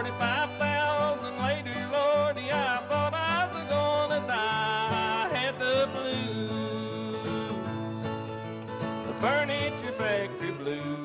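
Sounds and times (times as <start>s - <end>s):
string band playing country blues: 0.0s - 11.0s.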